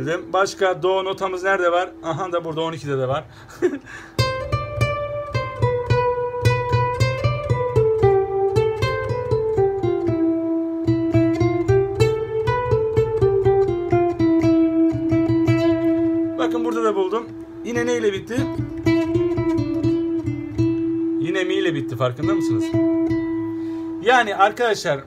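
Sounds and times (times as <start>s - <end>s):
person speaking: 0.0s - 4.0s, 16.2s - 19.3s, 21.1s - 23.0s, 24.0s - 25.0s
fingerstyle classical guitar: 4.2s - 24.5s.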